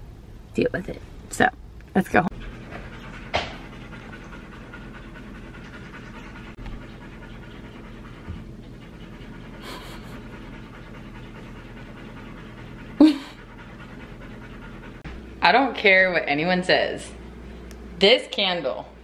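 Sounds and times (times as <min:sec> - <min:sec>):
dogs panting: 0:02.2 - 0:15.9.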